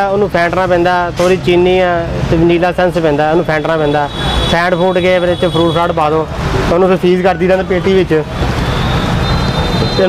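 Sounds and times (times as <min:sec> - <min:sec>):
man talking: 0:00.0 - 0:08.4
street noise: 0:00.0 - 0:10.0.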